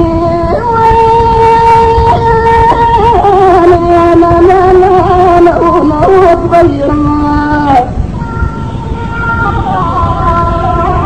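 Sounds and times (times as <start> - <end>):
cane flute melody: 8.2 - 11.0.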